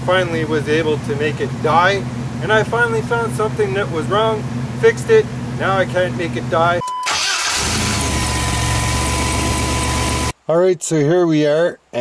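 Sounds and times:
engine idling: 0.0 - 10.3
thin steady whine: 7.9 - 10.3.

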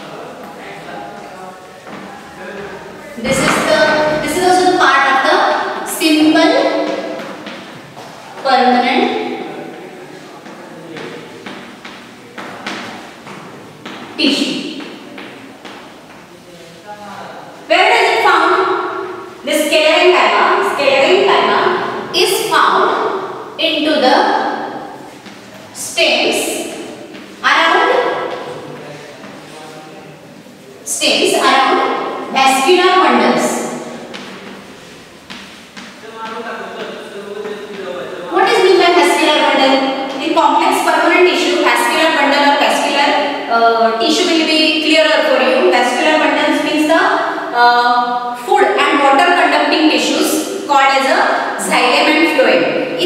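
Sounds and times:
chalk tapping and scraping: 34.1 - 38.0.

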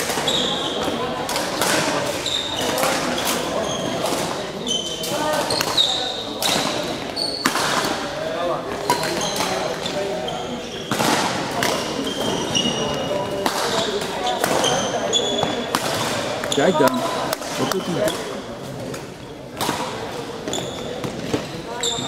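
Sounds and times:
shoes squeaking on court: 0.2 - 1.0, 2.0 - 7.6, 11.6 - 18.7, 20.4 - 22.0.

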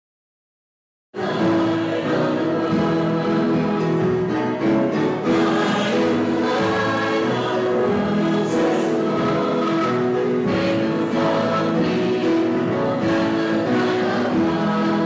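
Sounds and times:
choir singing a hymn: 1.2 - 15.0.

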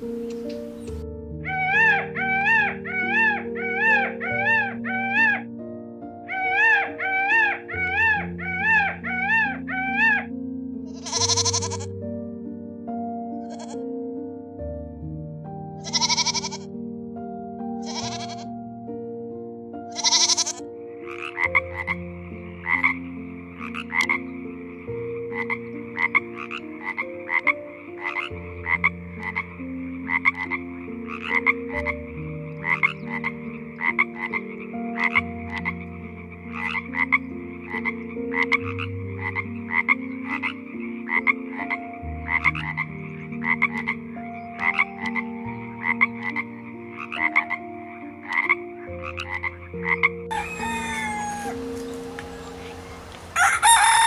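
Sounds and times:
frog croaking: 0.0 - 5.5, 6.2 - 12.0, 13.4 - 13.8, 15.8 - 16.8, 17.8 - 18.6, 19.9 - 54.0.

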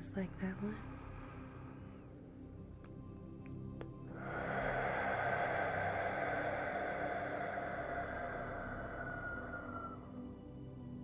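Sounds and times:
soft synth pad: 0.0 - 11.0
man breathing deeply through mouth: 4.0 - 10.6.

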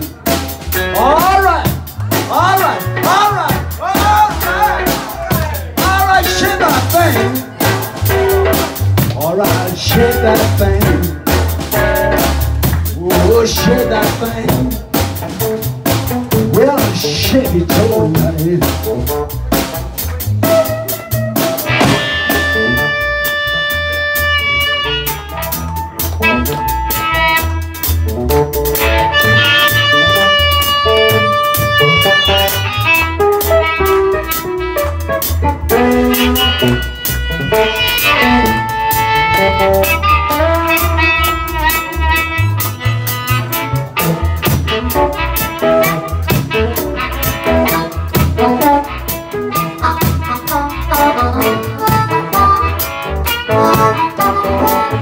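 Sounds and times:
blues band playing: 0.0 - 55.0
harmonica bending notes: 20.3 - 55.0.

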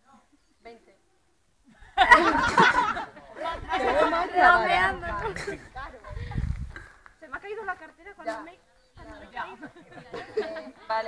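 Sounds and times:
voices talking over each other: 2.0 - 11.0.

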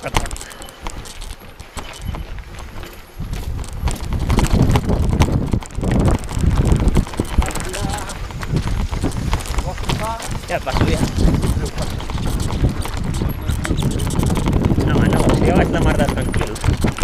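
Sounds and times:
bike rattling: 0.0 - 17.0
tyres crunching on gravel: 0.0 - 17.0.

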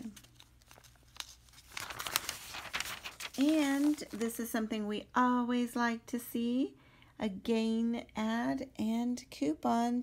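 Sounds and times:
faint paper crinkles: 0.0 - 4.6
newspaper pages rustling: 0.0 - 4.6.

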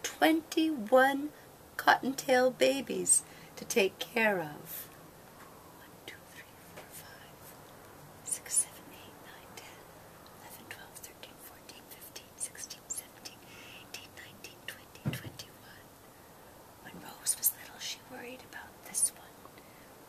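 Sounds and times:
woman whispering: 0.0 - 4.9, 5.8 - 7.6, 8.2 - 15.9, 16.8 - 19.8.

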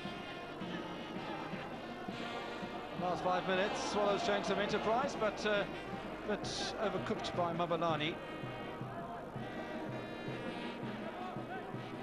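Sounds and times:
stadium crowd drone: 0.0 - 12.0.

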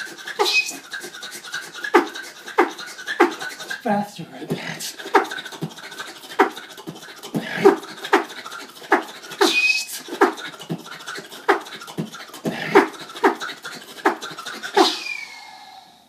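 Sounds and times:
beatboxing kick and snare: 0.0 - 3.9, 4.5 - 15.2
rapid mouth clicks: 0.0 - 15.1
short high whistled note: 0.4 - 0.8, 9.4 - 9.9, 14.8 - 16.0.

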